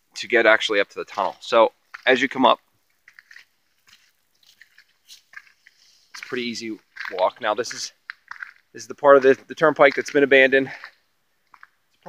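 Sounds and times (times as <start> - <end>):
footsteps crunching on dirt trail: 1.0 - 11.8.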